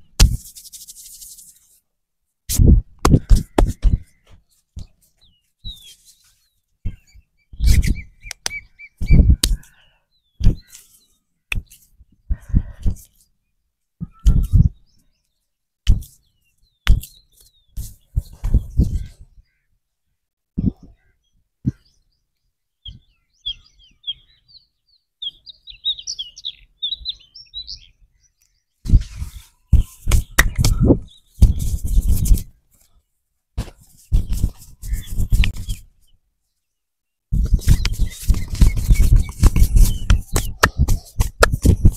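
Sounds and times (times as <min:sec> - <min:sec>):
hands rubbing and slapping skin: 0:00.2 - 0:01.8, 0:11.5 - 0:11.9, 0:16.8 - 0:17.2, 0:28.9 - 0:32.5, 0:33.6 - 0:35.9, 0:37.4 - 0:41.9
small bird chirping: 0:03.2 - 0:12.2, 0:14.0 - 0:19.7, 0:20.6 - 0:32.3, 0:33.8 - 0:36.2, 0:37.4 - 0:41.9.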